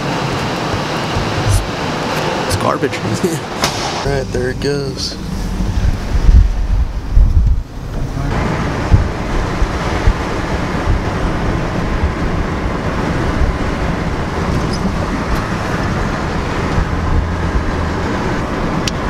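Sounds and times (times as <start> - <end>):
road and wind noise inside vehicle: 0.0 - 19.0
wind and handling thumps on microphone: 5.5 - 11.3.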